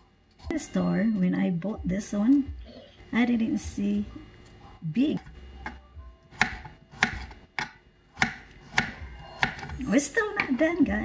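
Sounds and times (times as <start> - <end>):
knife chopping on wooden board: 5.7 - 9.8.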